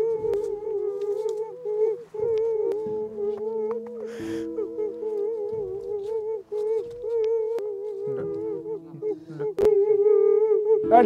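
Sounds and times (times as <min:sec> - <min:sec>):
eerie horror background music: 0:00.0 - 0:11.0.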